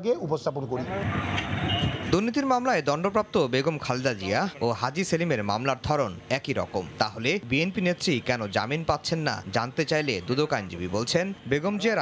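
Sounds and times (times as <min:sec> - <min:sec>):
vehicle noise: 0:00.6 - 0:12.0
crowd hubbub: 0:00.7 - 0:12.0.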